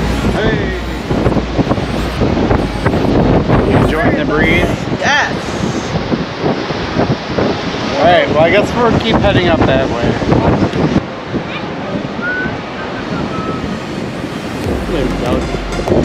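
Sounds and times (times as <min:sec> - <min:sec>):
person speaking: 0:00.0 - 0:06.0
wind buffeting microphone: 0:00.0 - 0:16.0.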